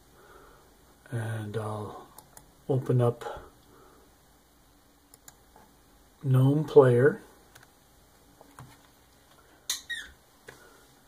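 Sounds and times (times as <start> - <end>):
high-pitched falling squeak: 9.7 - 10.2.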